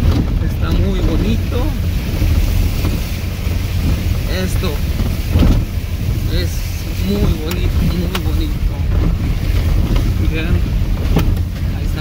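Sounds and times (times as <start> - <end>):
engine and tyres rumbling: 0.0 - 12.0
water splashing under wheels: 0.0 - 12.0.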